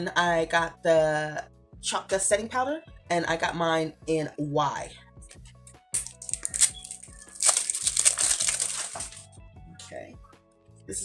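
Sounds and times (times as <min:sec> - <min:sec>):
soft background music: 0:00.0 - 0:11.0
wrapping crinkling: 0:05.4 - 0:09.4.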